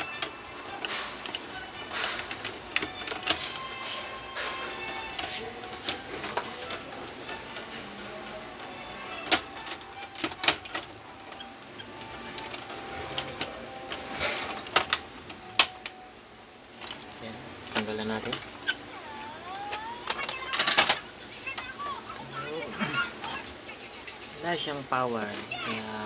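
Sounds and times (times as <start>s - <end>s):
plastic parts clicking: 9.2s - 13.6s, 16.8s - 21.0s.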